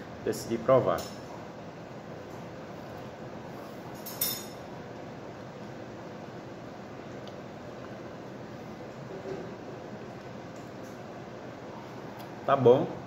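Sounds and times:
room noise: 0.0s - 13.0s
tableware clinking: 3.9s - 4.7s.

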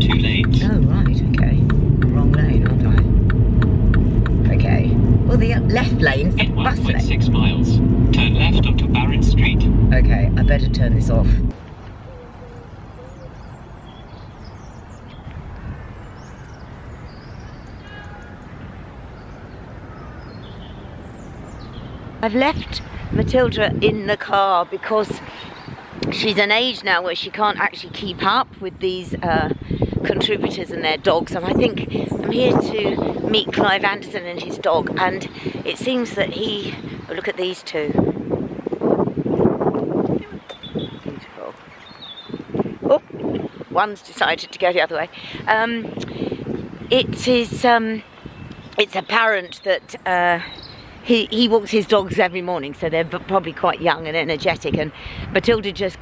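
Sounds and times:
steady low rumble: 0.0s - 11.7s
wind buffeting microphone: 0.0s - 56.0s
birds chirping and whistling: 15.9s - 18.5s, 19.2s - 23.0s, 40.0s - 43.7s.

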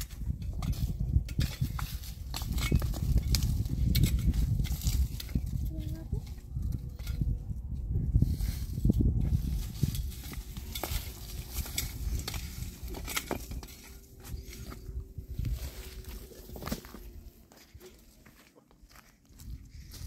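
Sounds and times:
low rumble: 0.0s - 18.2s
gravel and dirt scraping: 0.0s - 20.0s.

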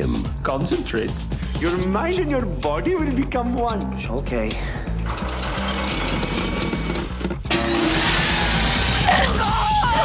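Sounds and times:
trailer music with low bass: 0.0s - 10.0s.

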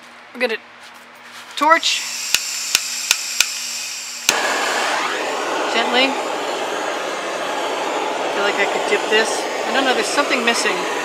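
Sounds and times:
butane torch hissing: 1.8s - 11.0s
torch igniter clicks: 2.2s - 4.4s.

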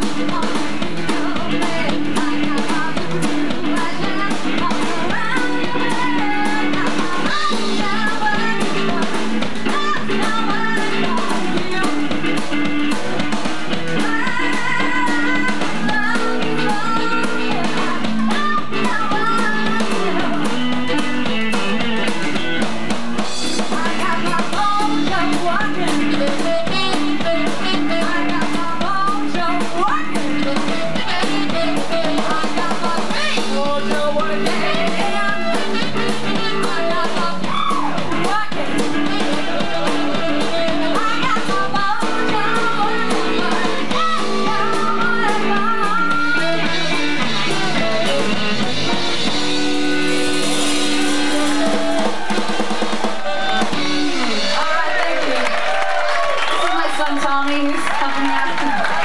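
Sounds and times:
woman singing: 0.0s - 22.1s, 23.6s - 49.6s, 56.6s - 59.0s
blues band playing: 0.0s - 59.0s.

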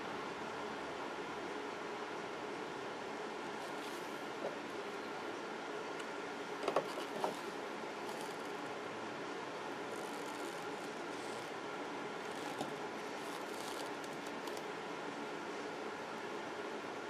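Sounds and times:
faint hum: 0.0s - 17.0s.

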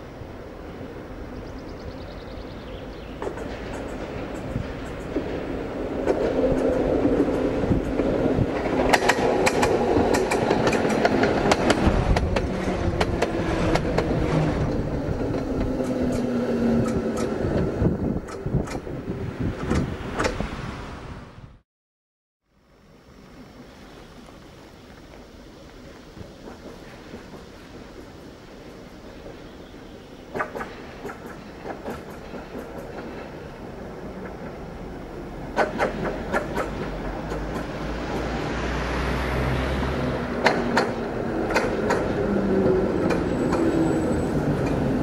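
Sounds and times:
tram hum sliding lower: 0.0s - 21.4s, 22.6s - 45.0s
wheels clacking on track: 2.2s - 20.4s, 24.0s - 45.0s.

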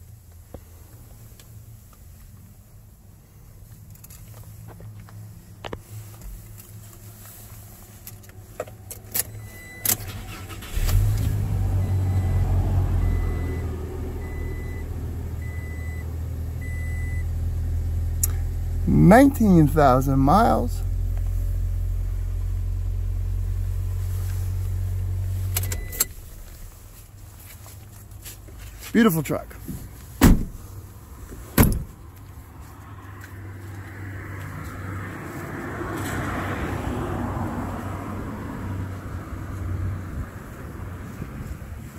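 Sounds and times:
car engine idling: 0.0s - 33.8s
engine starter clicks: 9.2s - 11.5s
car door shutting: 29.7s - 30.6s, 31.4s - 32.0s.

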